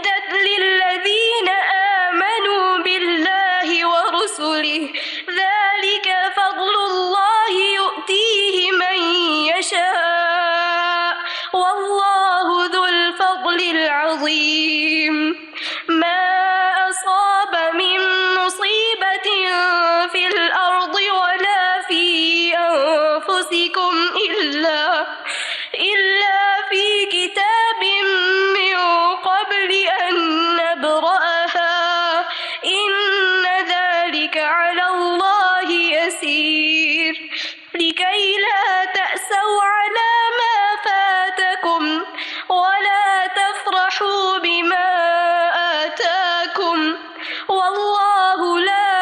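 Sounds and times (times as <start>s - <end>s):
woman chanting melodically: 0.0s - 49.0s
quick breath: 4.9s - 5.3s, 11.2s - 11.6s, 15.5s - 15.9s, 25.2s - 25.8s, 32.3s - 32.6s, 37.3s - 37.8s, 42.1s - 42.5s, 47.0s - 47.5s.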